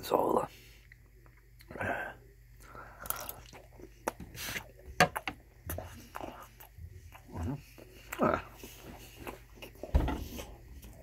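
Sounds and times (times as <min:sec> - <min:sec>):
close-miked chewing: 0:02.5 - 0:11.0.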